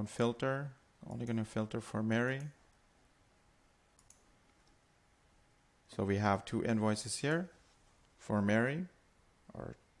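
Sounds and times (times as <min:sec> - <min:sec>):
faint computer mouse clicks: 0:04.0 - 0:04.8.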